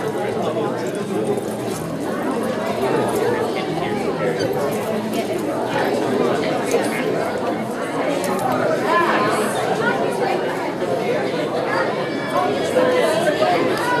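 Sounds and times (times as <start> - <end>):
crowd chatter: 0.0 - 14.0.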